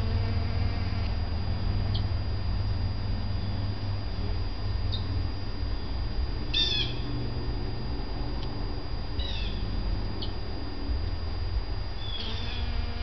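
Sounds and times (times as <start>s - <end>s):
steady low rumble: 0.0s - 13.0s
small bird chirping: 5.8s - 7.1s, 9.2s - 9.6s, 12.0s - 12.8s.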